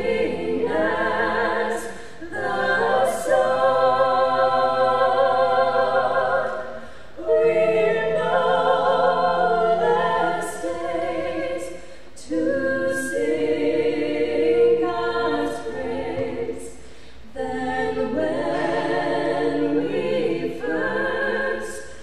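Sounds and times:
women singing a cappella: 0.0 - 22.0.

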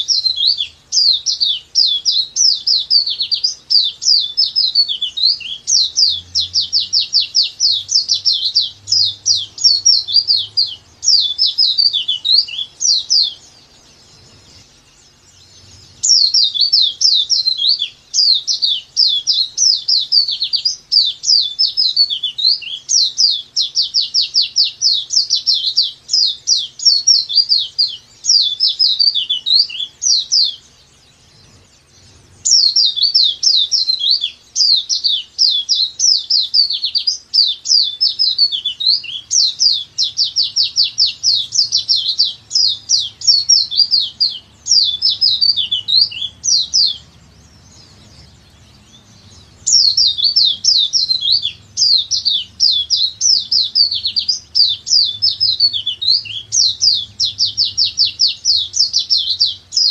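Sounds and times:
white-eye bird singing high chirps: 0.0 - 59.9.

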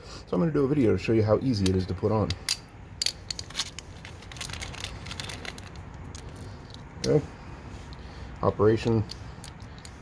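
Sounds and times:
small screws clicking on concrete: 1.6 - 7.2, 8.9 - 10.0
plastic bag crinkling: 3.4 - 6.4.

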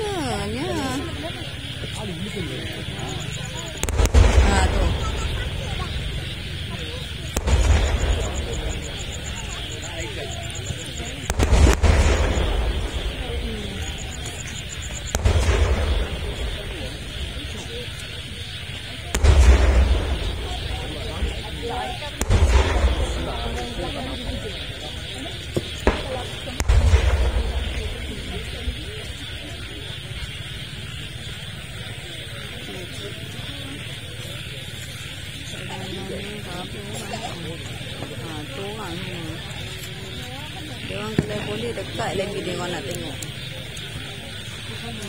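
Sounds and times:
crowd talking: 0.0 - 45.0
cannon booms with rumble: 3.8 - 18.2, 19.1 - 30.7.

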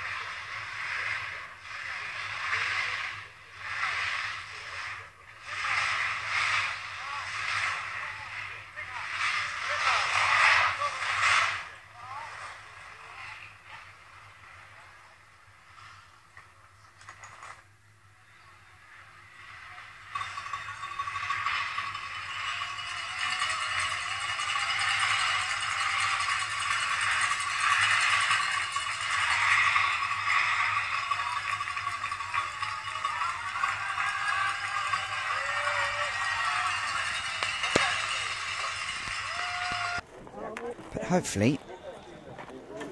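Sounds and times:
skis scraping on snow: 0.0 - 13.4, 20.2 - 40.0
crowd cheering: 20.1 - 42.9.

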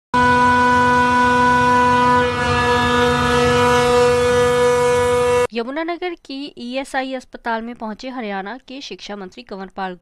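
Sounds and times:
machinery humming and whining: 0.2 - 5.5.

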